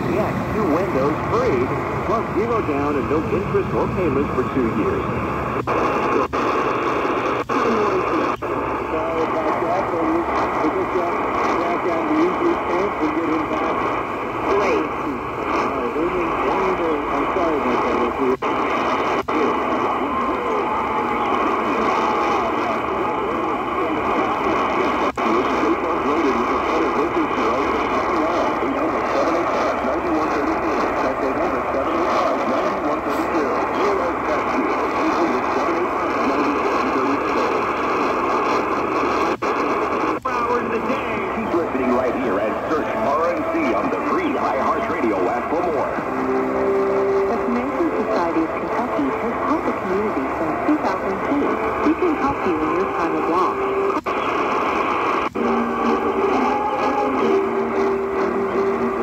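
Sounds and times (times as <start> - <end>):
radio speech through small speaker: 0.0 - 59.0
radio static: 0.0 - 59.0.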